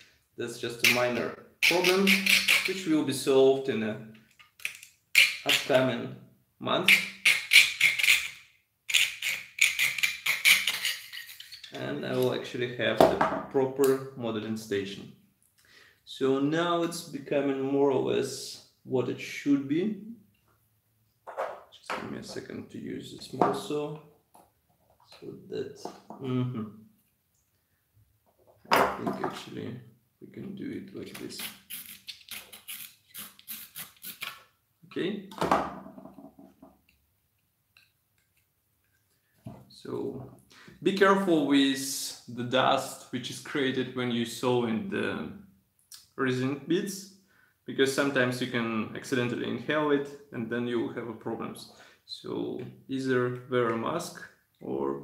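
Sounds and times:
saw cutting resin: 1.6 - 2.8.

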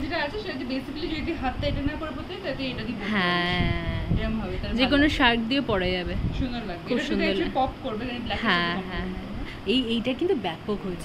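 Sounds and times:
woman talking: 0.0 - 11.0.

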